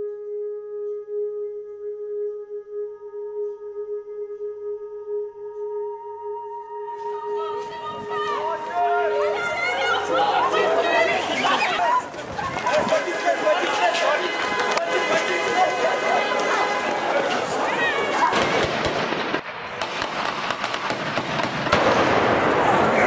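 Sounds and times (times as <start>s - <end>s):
voices: 7.0s - 18.7s
street noise: 7.0s - 23.0s
gunfire cracks: 18.3s - 23.0s.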